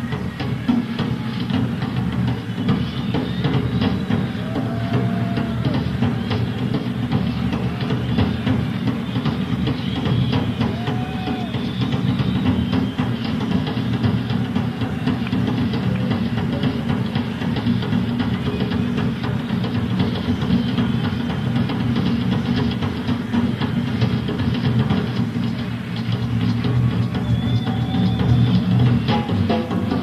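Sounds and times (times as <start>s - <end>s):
rock drum solo: 0.0s - 30.0s.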